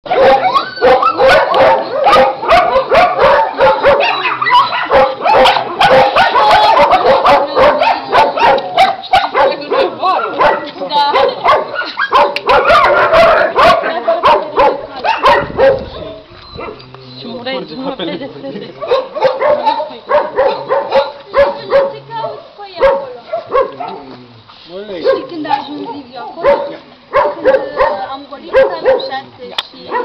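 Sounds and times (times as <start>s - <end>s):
dogs barking rapidly: 0.1s - 16.9s, 18.8s - 24.0s, 25.0s - 30.0s.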